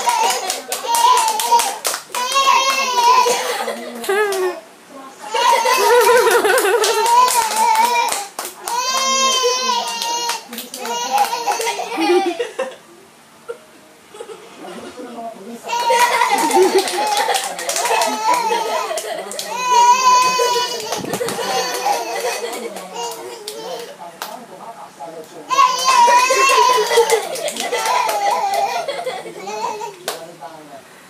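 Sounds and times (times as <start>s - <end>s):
hand claps: 0.0s - 3.1s, 6.0s - 11.9s, 15.8s - 24.4s, 25.8s - 28.8s
faint voices: 0.0s - 31.0s
burst of laughter and talk: 2.6s - 4.6s, 5.2s - 8.4s, 10.9s - 12.9s, 15.7s - 24.0s, 25.5s - 29.9s.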